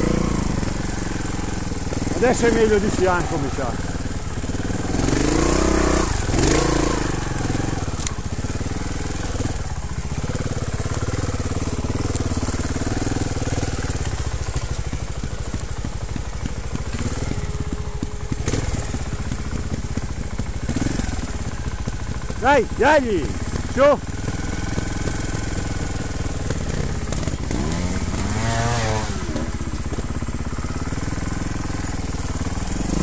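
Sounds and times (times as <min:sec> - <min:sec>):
motorcycle engine running: 0:00.0 - 0:33.0.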